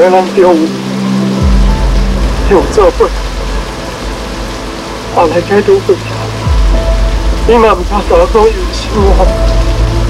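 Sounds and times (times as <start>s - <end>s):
heavy rain falling: 0.0s - 10.0s.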